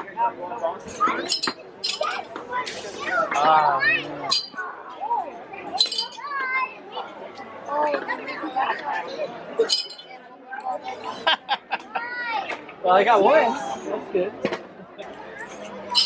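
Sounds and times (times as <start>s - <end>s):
plastic rings clinking on bottles: 0.8s - 2.4s, 4.1s - 4.7s, 5.8s - 6.3s, 9.6s - 10.2s, 15.4s - 16.0s.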